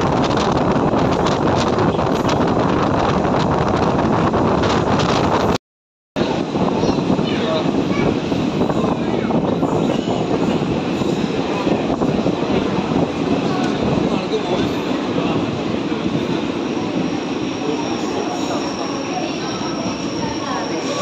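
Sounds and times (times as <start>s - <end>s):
train wheels rumbling on rail: 0.0s - 5.6s, 6.2s - 21.0s
crowd voices: 6.2s - 21.0s.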